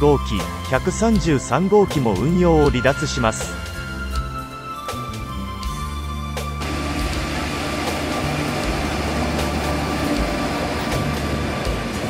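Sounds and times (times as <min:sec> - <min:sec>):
soft background music: 0:00.0 - 0:12.0
train wheels rumbling on rails: 0:06.6 - 0:12.0.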